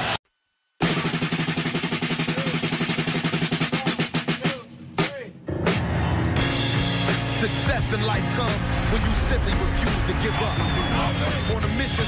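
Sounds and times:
fast drum roll: 0:00.8 - 0:05.2, 0:07.7 - 0:12.0.

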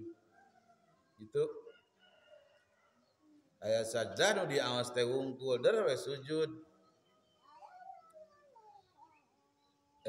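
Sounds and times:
faint wavering animal cries: 0:07.1 - 0:10.0.

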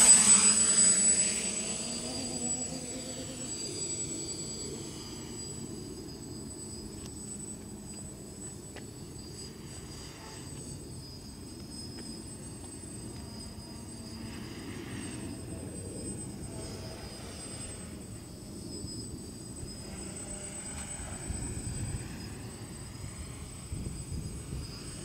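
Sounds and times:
distant quadcopter buzzing: 0:00.0 - 0:25.0.

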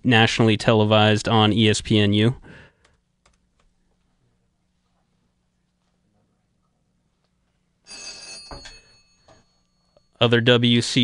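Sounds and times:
telephone ringing: 0:07.8 - 0:10.3.

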